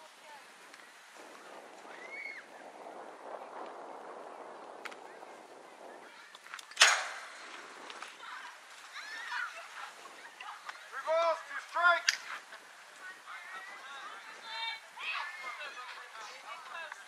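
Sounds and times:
outdoor background noise: 0.0s - 17.0s.

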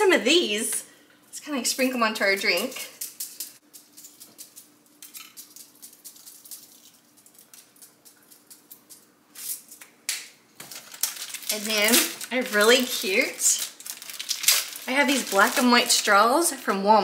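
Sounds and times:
sprinkles rattling in shaker jar: 2.6s - 9.0s.

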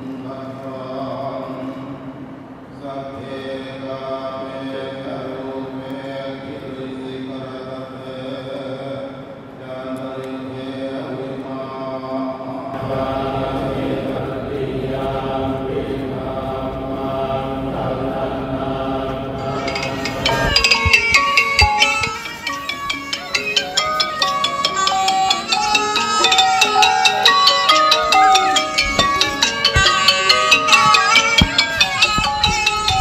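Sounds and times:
monks chanting in unison: 0.0s - 2.0s, 2.7s - 22.1s.

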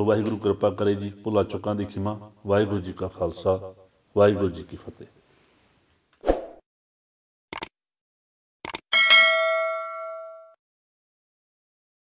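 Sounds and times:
bright bell chime: 9.0s - 10.6s.

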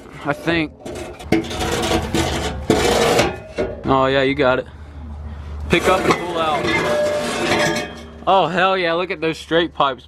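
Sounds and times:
metal pipe scraping metal: 0.0s - 4.1s, 5.7s - 8.4s.

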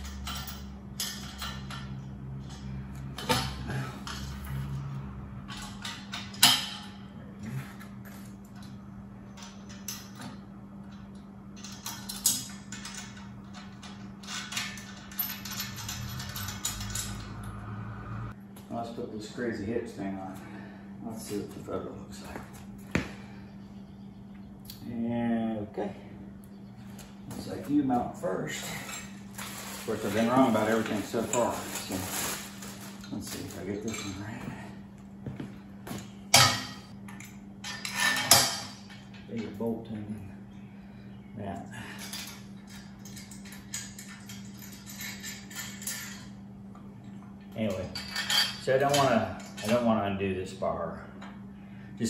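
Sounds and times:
metal clinks and rattles: 0.0s - 4.8s, 8.0s - 17.6s, 42.0s - 46.4s, 47.7s - 49.8s
steady low hum: 0.0s - 52.0s.

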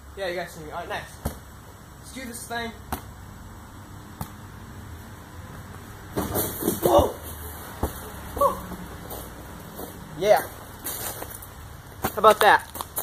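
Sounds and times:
basketball knocking hoop and ground: 1.1s - 1.6s, 2.8s - 3.2s, 4.2s - 4.4s, 6.1s - 8.8s
people shouting: 8.3s - 8.8s.

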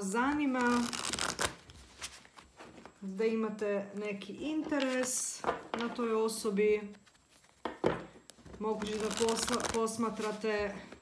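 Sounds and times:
cards shuffling: 0.4s - 2.9s, 6.8s - 10.5s.

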